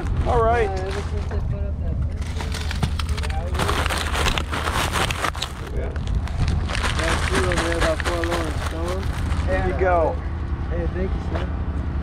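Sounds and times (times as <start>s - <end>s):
steady low rumble: 0.0s - 12.0s
plastic packaging rustling: 2.2s - 9.6s.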